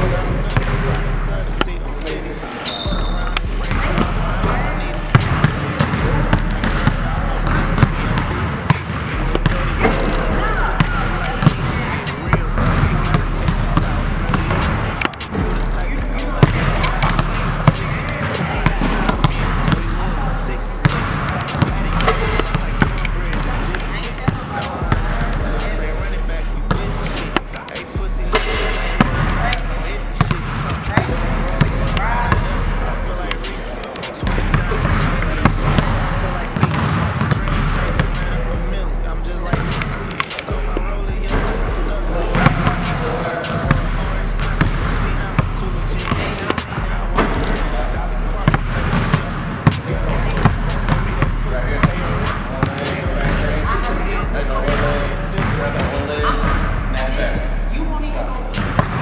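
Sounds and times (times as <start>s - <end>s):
hip-hop music with heavy bass: 0.0s - 59.0s
basketballs bouncing on wooden floor: 0.3s - 1.8s, 2.9s - 15.6s, 16.4s - 20.1s, 20.8s - 25.3s, 28.4s - 29.6s, 30.2s - 32.6s, 34.2s - 38.2s, 39.5s - 41.5s, 42.2s - 47.8s, 48.4s - 53.7s, 54.6s - 56.8s, 58.6s - 59.0s.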